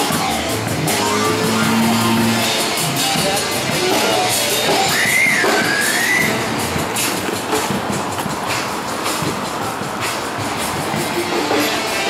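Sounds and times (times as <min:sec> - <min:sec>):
city street noise: 0:00.0 - 0:12.0
music playing: 0:00.0 - 0:12.0.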